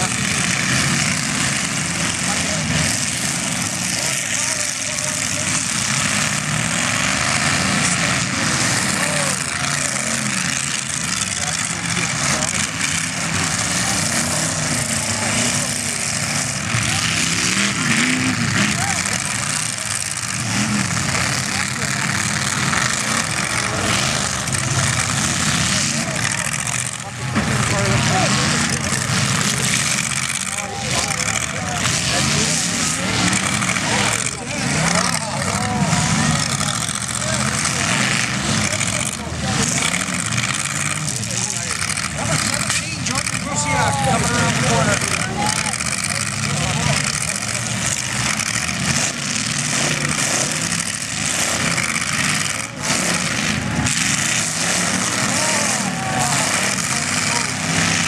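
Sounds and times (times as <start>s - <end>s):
car engines revving: 0.0s - 58.0s.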